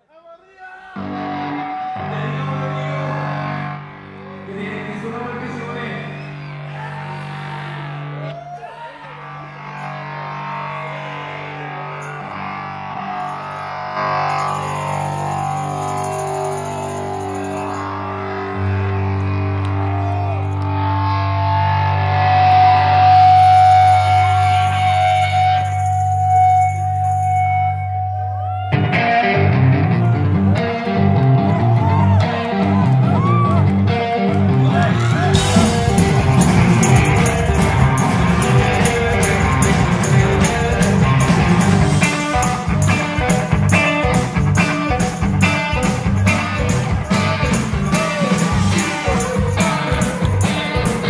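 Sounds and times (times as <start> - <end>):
electric guitar chords: 1.0 - 8.3, 9.2 - 51.0.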